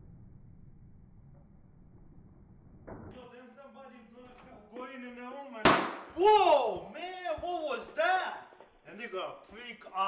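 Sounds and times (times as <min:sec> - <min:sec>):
sharp loud bang: 0:05.6 - 0:06.3.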